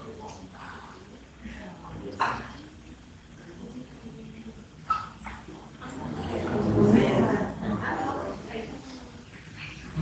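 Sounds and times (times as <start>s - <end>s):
faint indistinct voices: 0.0s - 10.0s
room noise: 0.0s - 10.0s.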